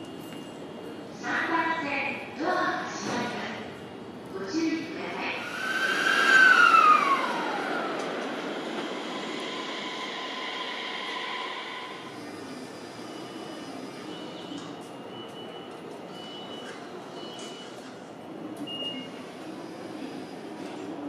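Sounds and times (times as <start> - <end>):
train running noise: 4.4 - 15.4
steady high tone: 5.3 - 14.1
train wheels squealing: 5.4 - 17.8.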